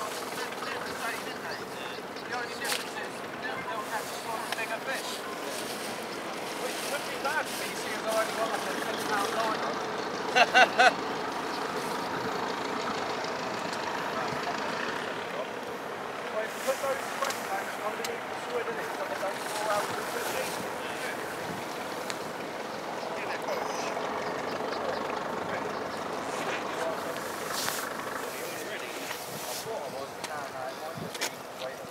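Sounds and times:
outdoor background noise: 0.0s - 31.9s
people chattering: 0.0s - 31.9s.

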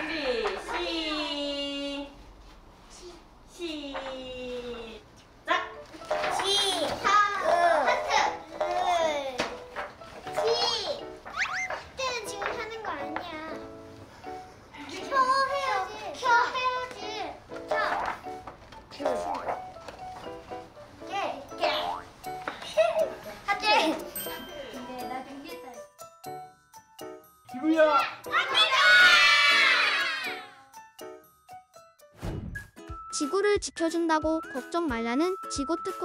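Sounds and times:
background music: 5.0s - 36.0s
children talking and calling out: 6.2s - 9.5s, 14.7s - 18.3s, 28.1s - 30.7s
children shouting together: 28.3s - 30.6s.

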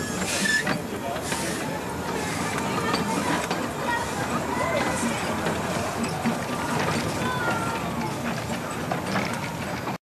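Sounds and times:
steam hissing: 0.0s - 7.2s
steam train clattering past: 0.0s - 10.0s.

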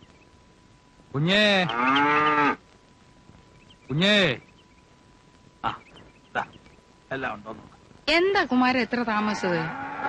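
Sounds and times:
cow mooing: 1.6s - 2.6s, 9.2s - 10.0s.

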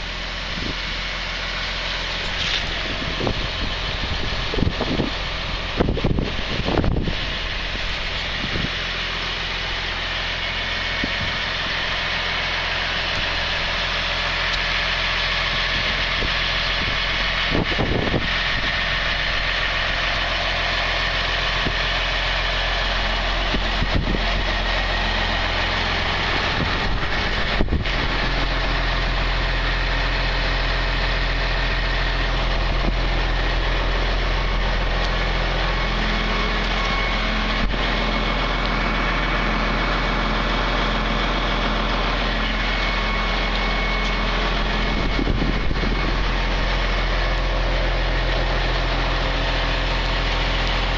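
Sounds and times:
engine idling: 0.0s - 50.9s.

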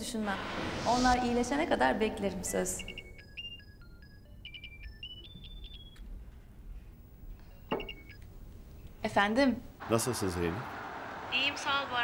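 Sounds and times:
phone ringtone beeps: 2.6s - 6.3s, 7.0s - 8.3s.

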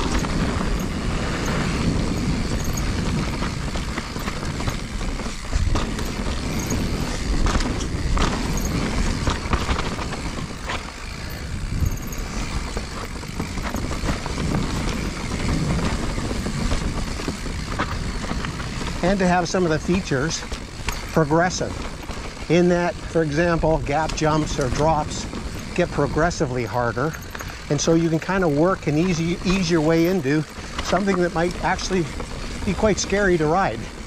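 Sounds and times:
bike knocking and rattling: 0.0s - 34.0s
bike tyres rolling on dirt: 0.0s - 34.0s.

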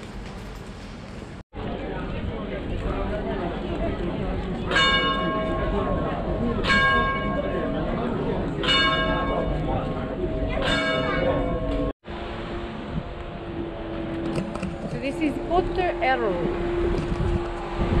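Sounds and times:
street voices: 0.2s - 11.9s, 12.8s - 18.0s
clock-tower bell striking: 4.6s - 11.9s.

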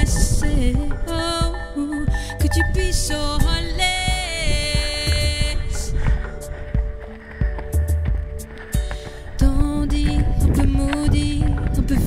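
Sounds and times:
soundtrack music with singing: 0.0s - 12.0s.

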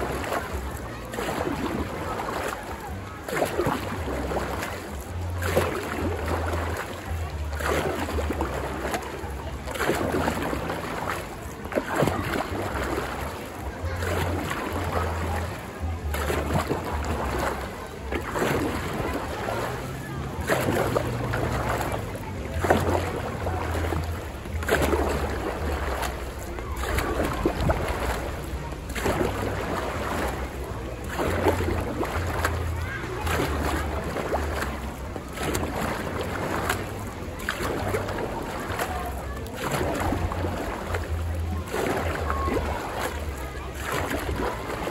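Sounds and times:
paddle strokes splashing water: 0.0s - 44.9s.

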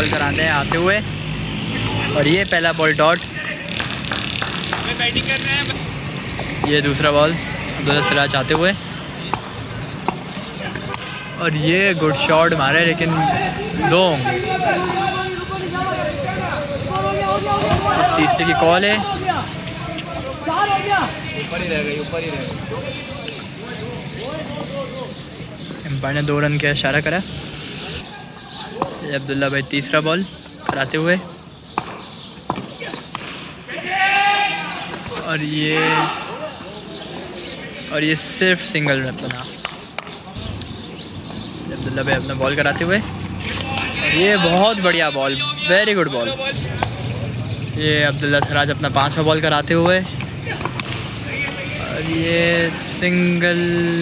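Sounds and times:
ball bouncing on road: 0.0s - 1.0s, 3.1s - 5.4s, 6.3s - 6.9s, 9.2s - 11.3s, 16.9s - 18.2s, 30.5s - 31.1s, 31.7s - 33.5s, 42.1s - 44.0s, 46.6s - 47.2s, 48.2s - 48.8s, 49.6s - 51.8s
street noise: 0.0s - 54.0s
bat cracking ball: 31.8s - 33.6s, 50.6s - 51.2s
bat striking ball: 50.5s - 51.2s.

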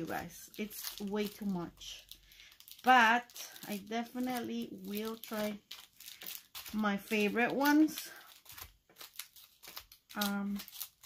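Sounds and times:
plastic packets crinkling: 0.0s - 11.0s.

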